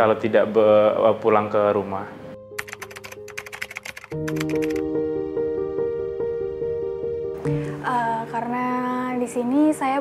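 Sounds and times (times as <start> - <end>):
soft instrumental music: 0.2 - 10.0
keyboard typing clicks: 2.6 - 4.8.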